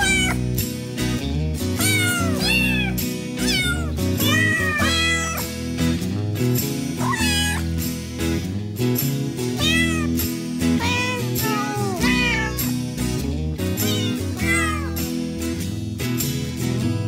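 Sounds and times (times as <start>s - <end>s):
cat meowing: 0.0s - 0.5s, 1.8s - 5.5s, 7.0s - 7.7s, 9.6s - 10.2s, 10.8s - 12.8s, 13.8s - 15.0s
background music with plucked guitar: 0.0s - 17.0s.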